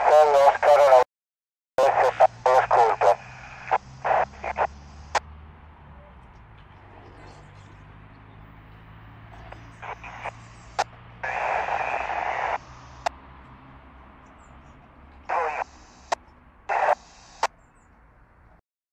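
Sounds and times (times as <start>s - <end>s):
radio receiver hiss: 0.0s - 1.0s, 1.8s - 5.3s, 9.3s - 13.2s, 15.2s - 17.6s
bursts of loud static: 0.0s - 1.1s, 1.8s - 5.4s, 9.2s - 13.2s, 15.2s - 17.6s
sharp clicks: 12.6s - 13.2s, 15.6s - 17.6s.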